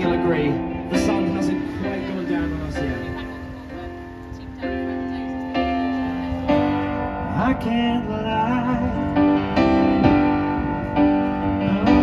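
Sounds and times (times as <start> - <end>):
piano playing sustained chords: 0.0 - 12.0.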